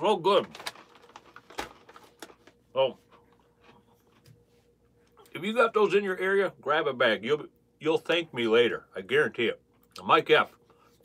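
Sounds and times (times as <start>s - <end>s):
snack bag rustling: 0.2s - 3.3s.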